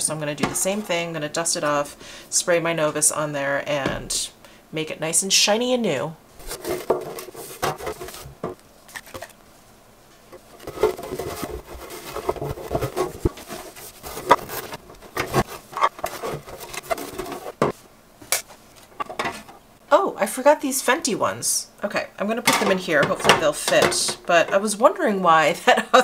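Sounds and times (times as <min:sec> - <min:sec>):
cloth rubbing on plastic: 0:06.4 - 0:08.4, 0:10.4 - 0:17.9
hard plastic knocking and clattering: 0:06.5 - 0:08.6, 0:10.3 - 0:17.8.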